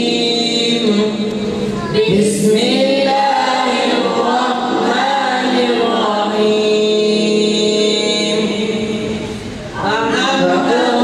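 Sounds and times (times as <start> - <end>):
group chanting in unison: 0.0 - 1.3, 1.9 - 11.0.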